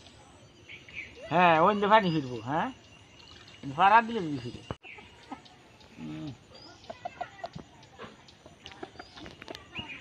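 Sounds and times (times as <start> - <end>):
chickens clucking: 4.2 - 10.0.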